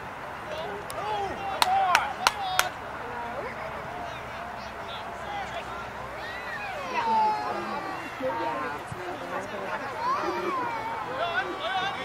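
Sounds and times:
voices calling out: 0.0 - 12.0
person clapping: 1.6 - 2.7.

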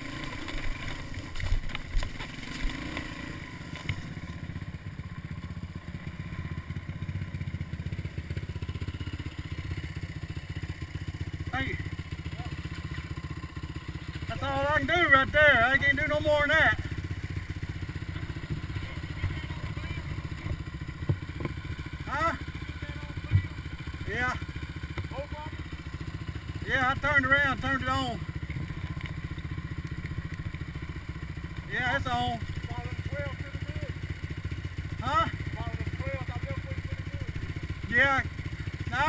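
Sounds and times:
atv engine idling: 0.0 - 39.0.

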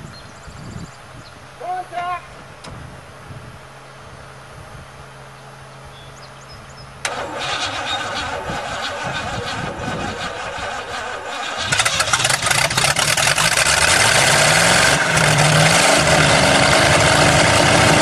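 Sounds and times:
engine running: 2.6 - 18.0
starter motor cranking engine: 7.0 - 18.0.

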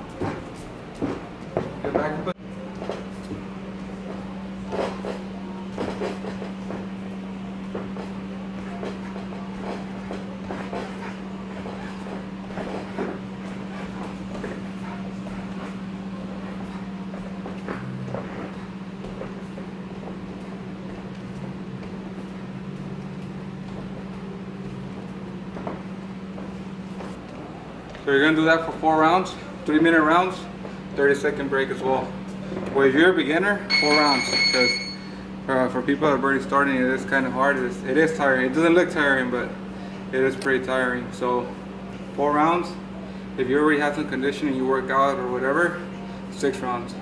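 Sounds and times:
steady low hum: 0.0 - 47.0.

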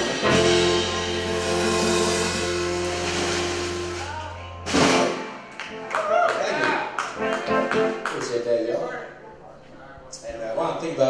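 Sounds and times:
loud final band hit: 0.0 - 5.5
live rock band: 0.0 - 9.2.

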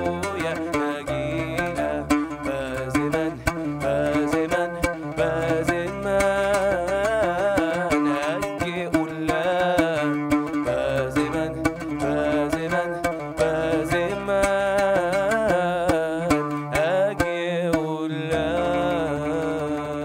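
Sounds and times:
man singing ornamented melody: 0.0 - 20.0
plucked lute: 0.0 - 20.0.

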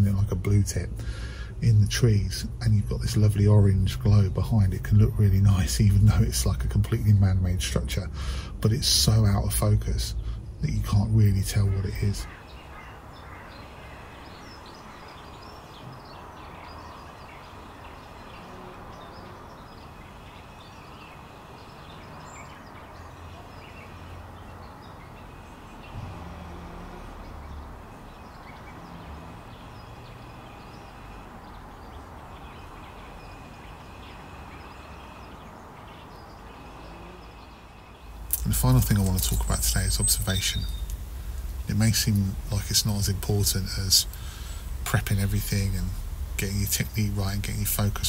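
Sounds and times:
background hiss: 0.0 - 48.0
bird chirps: 9.3 - 48.0.

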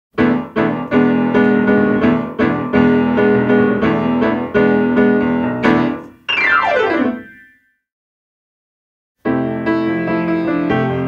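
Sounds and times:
piano chords: 0.2 - 7.7, 9.3 - 11.0.

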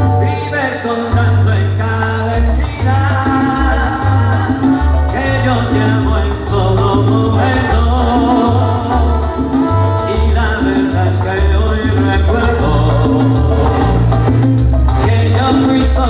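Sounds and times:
man singing into microphone: 0.0 - 14.3, 15.0 - 16.0
salsa music over sound system: 0.0 - 16.0.

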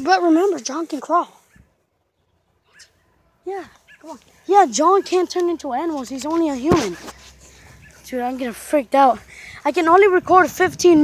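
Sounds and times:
boy saying yeah: 3.5 - 7.0.

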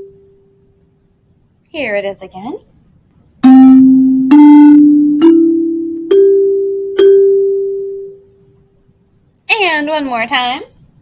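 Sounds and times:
five-note melody on pitched instrument: 3.4 - 8.2.

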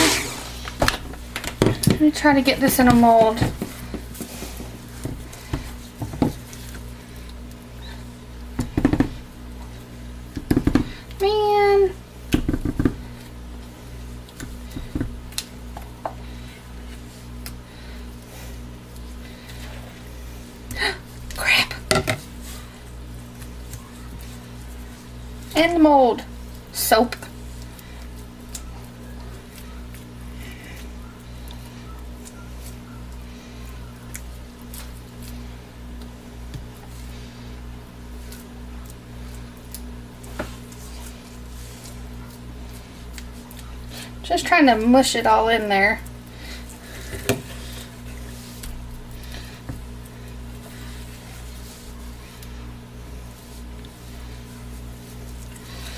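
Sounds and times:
steady low hum: 0.0 - 55.9
spatula squishing and scraping: 21.5 - 55.9
spatula knocking and scraping: 21.8 - 22.3.

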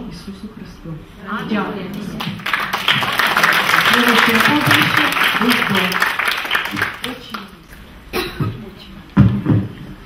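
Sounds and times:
person coughing: 8.1 - 8.7.

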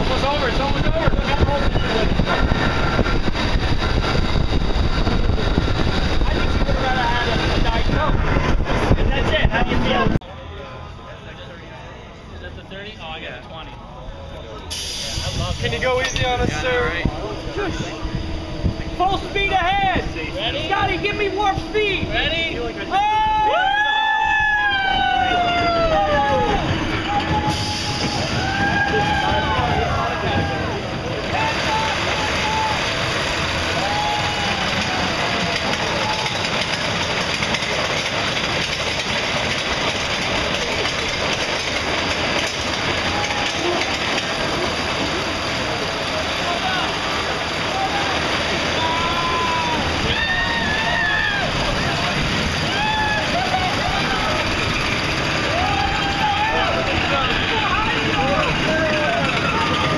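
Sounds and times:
roller coaster rushing and rumbling: 0.0 - 59.9
riders whooping and yelling: 18.9 - 38.0, 42.0 - 59.9.

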